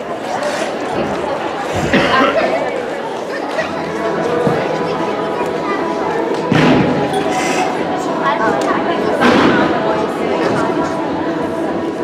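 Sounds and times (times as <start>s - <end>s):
indistinct chatter of many voices: 0.0s - 12.0s.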